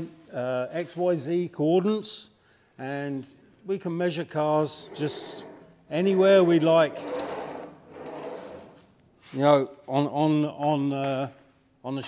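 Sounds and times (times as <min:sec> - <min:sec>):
metal arm rubbing on carriage: 0:04.6 - 0:08.9.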